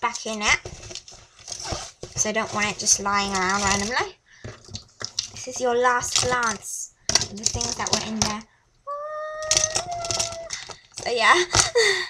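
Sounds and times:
pens clattering into pencil case: 0.0 - 8.4, 9.5 - 11.8.

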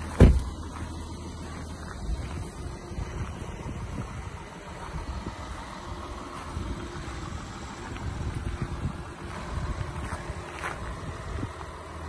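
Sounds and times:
diesel engine idling: 0.0 - 12.0
gusty low rumble: 0.0 - 12.0.

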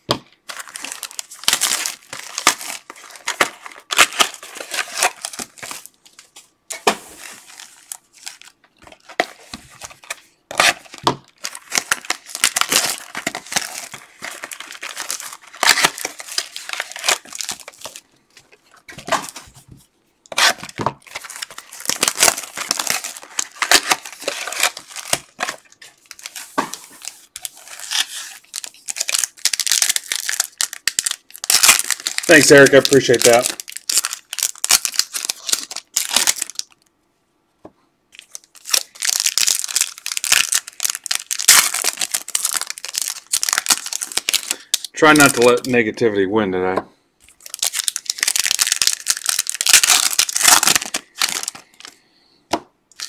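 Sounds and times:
foil wrappers tearing and crinkling: 0.5 - 19.4, 20.3 - 36.8, 38.2 - 45.6, 47.4 - 52.0.

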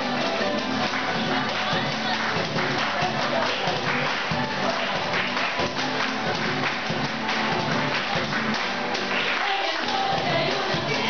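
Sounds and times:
guitars strumming: 0.0 - 11.0.

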